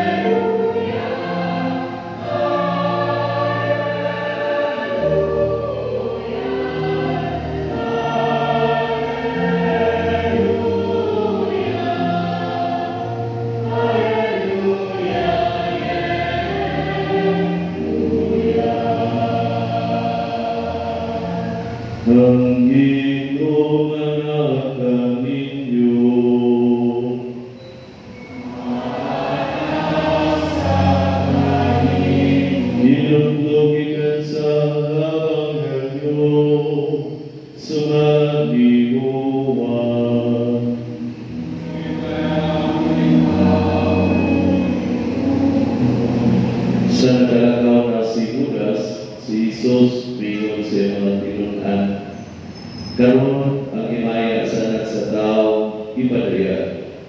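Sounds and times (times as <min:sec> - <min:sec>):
church choir singing: 0:00.0 - 0:57.0.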